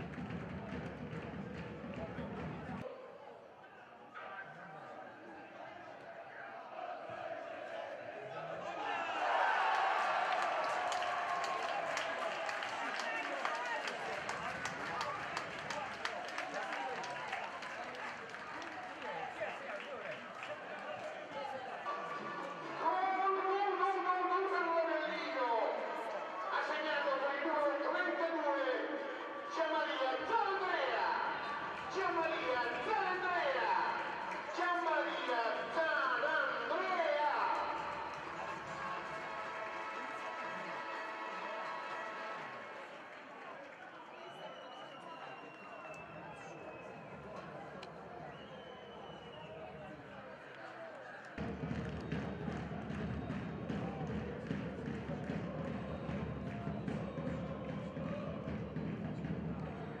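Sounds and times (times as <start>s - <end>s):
stadium background noise: 0.0s - 60.0s.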